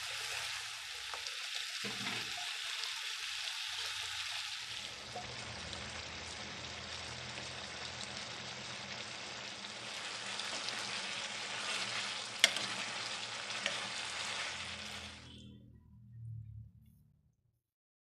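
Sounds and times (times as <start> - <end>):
curry sizzling in a pan: 0.0 - 15.5
metal spoon stirring: 10.3 - 15.2.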